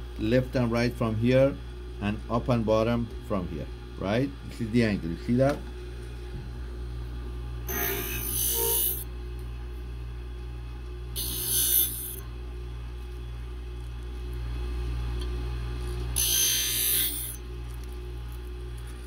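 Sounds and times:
sharpening machine humming: 0:07.6 - 0:09.1, 0:11.1 - 0:12.4, 0:15.1 - 0:19.0
metal grinding hiss: 0:07.7 - 0:09.0, 0:16.2 - 0:17.4.

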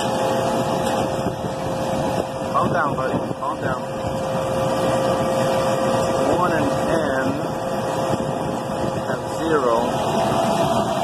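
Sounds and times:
mid-pitched hum: 0:00.0 - 0:11.0
refrigeration units whirring: 0:00.0 - 0:11.0.

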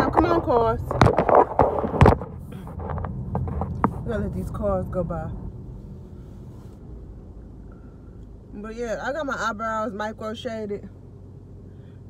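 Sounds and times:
car cabin low rumble: 0:00.0 - 0:12.0.

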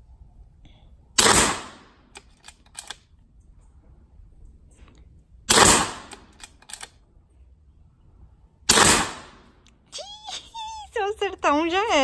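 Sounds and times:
air rifle shots: 0:01.2 - 0:02.1, 0:05.5 - 0:06.4, 0:08.7 - 0:09.6.

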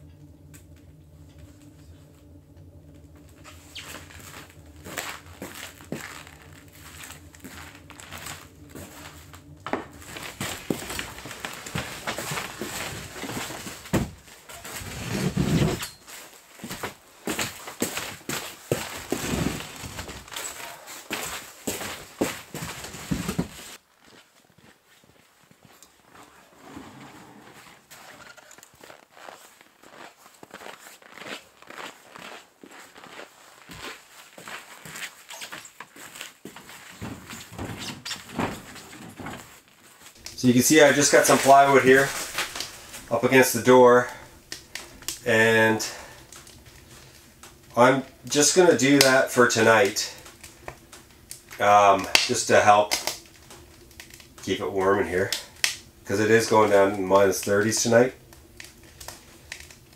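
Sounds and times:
footsteps on plywood floor: 0:00.3 - 0:14.3, 0:29.9 - 0:39.6.

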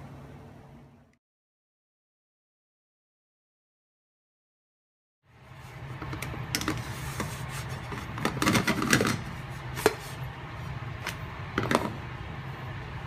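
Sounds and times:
steady low hum: 0:05.2 - 0:13.0.

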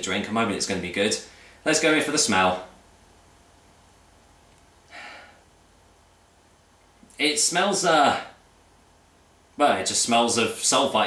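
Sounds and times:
person sniffing: 0:04.9 - 0:05.4.

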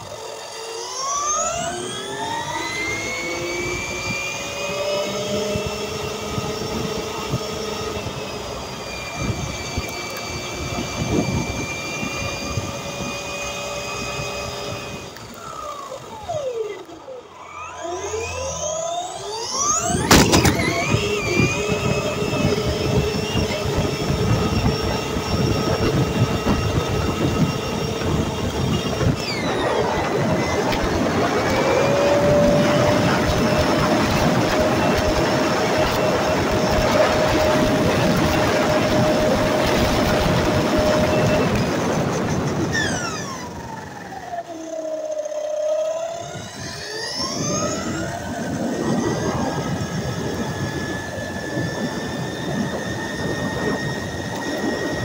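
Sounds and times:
rc car motor whine: 0:00.0 - 0:55.0.

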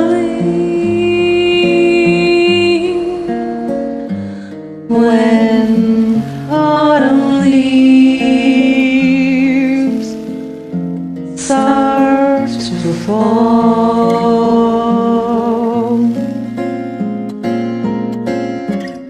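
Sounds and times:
woman singing with vibrato: 0:00.0 - 0:10.7, 0:11.3 - 0:16.6
plucked acoustic guitar: 0:00.0 - 0:19.0.

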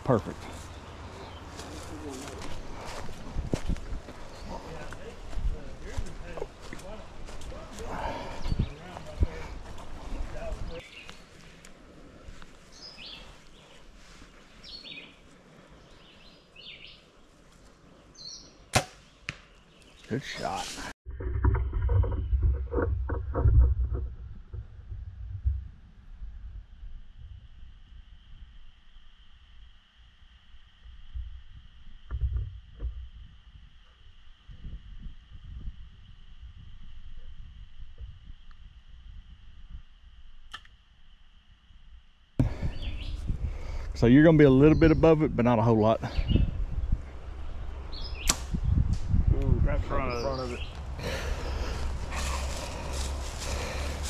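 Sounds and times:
bow string snap: 0:18.7 - 0:19.5, 0:40.4 - 0:40.8, 0:48.2 - 0:49.5.

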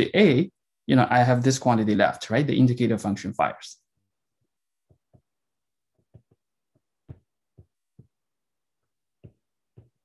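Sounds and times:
stylus tapping tablet screen: 0:04.4 - 0:10.0.

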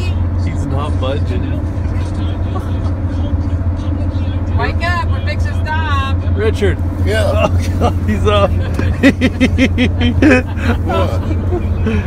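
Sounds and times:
car cabin road and engine drone: 0:00.0 - 0:12.0.

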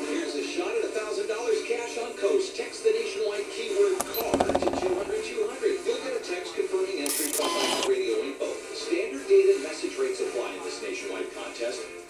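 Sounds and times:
voice over music on loudspeaker: 0:07.9 - 0:12.0.

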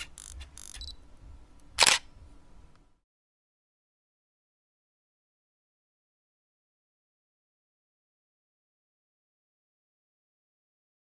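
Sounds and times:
camera shutter snap: 0:00.0 - 0:00.9, 0:01.8 - 0:02.1.

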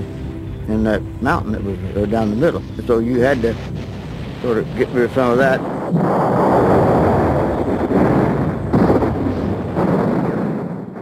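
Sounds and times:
explosion blasts: 0:02.9 - 0:11.0.

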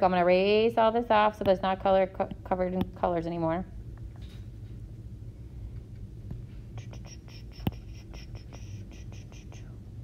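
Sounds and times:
stylus rubbing on tablet screen: 0:06.8 - 0:09.7.

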